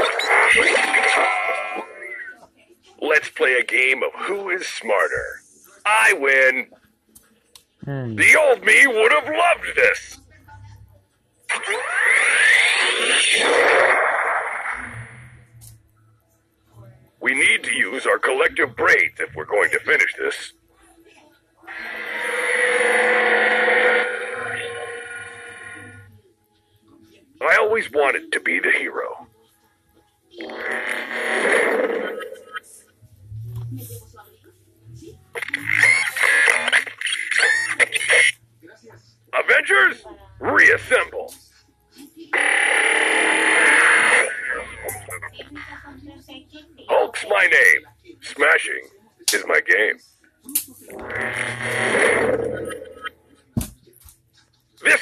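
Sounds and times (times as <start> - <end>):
toy speaker sound effect: 40.4 - 41.1, 42.3 - 45.7.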